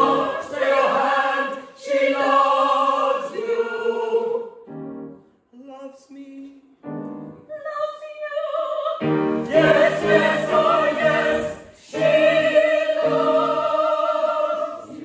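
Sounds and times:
mixed chorus singing operetta: 0:00.0 - 0:04.6, 0:09.0 - 0:15.0.

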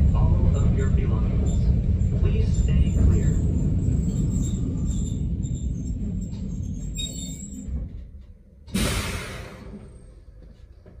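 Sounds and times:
train running rumble: 0:00.0 - 0:10.2.

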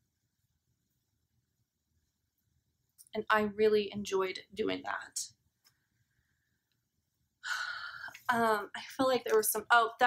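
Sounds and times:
woman sighing: 0:07.4 - 0:08.3.

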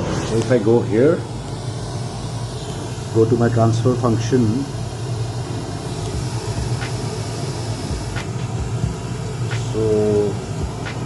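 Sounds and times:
pink noise: 0:00.0 - 0:11.0.

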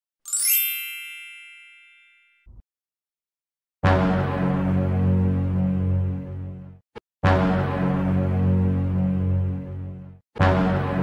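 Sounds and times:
bright shimmering chime: 0:00.3 - 0:02.4.

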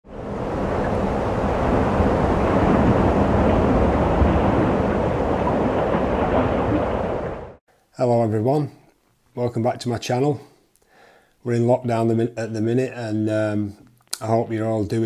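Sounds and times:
rushing noise with deep rumble: 0:00.0 - 0:07.6.

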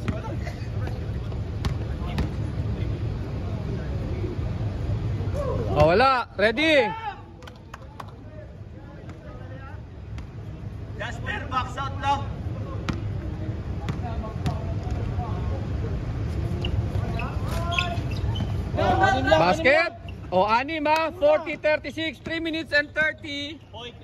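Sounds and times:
basketball bouncing on hard court: 0:01.6 - 0:02.4.

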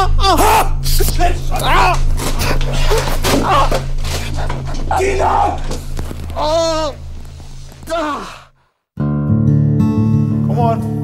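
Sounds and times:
low music bed: 0:00.0 - 0:08.4, 0:09.0 - 0:11.0.

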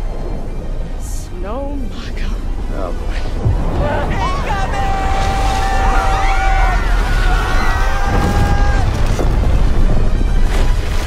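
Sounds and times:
low rumbling rush of snow: 0:00.0 - 0:11.0
long wailing yells: 0:03.8 - 0:09.0.

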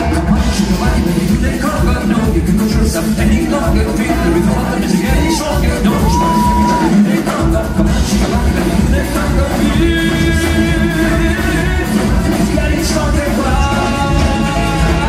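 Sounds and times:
drums: 0:00.0 - 0:15.0
keyboards: 0:00.0 - 0:15.0
male singer singing: 0:00.0 - 0:15.0.

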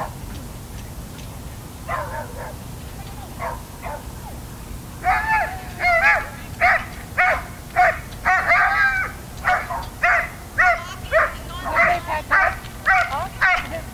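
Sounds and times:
dog barking: 0:01.9 - 0:02.6, 0:03.4 - 0:04.3, 0:05.0 - 0:13.9.

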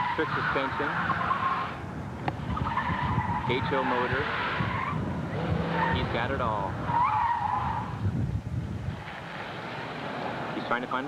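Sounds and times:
car tyres squealing: 0:00.0 - 0:08.1.

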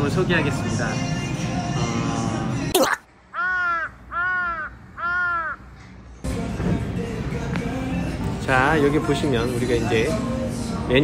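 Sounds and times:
background music: 0:00.0 - 0:03.0, 0:06.2 - 0:11.0
crow cawing: 0:03.3 - 0:05.8.

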